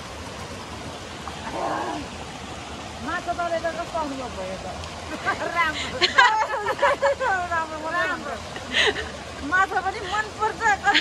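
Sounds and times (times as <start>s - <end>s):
water pouring from spouts: 0.0s - 11.0s.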